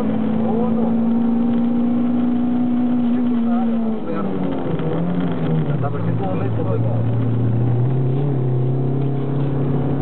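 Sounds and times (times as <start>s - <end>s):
car engine at high revs: 0.0s - 10.0s.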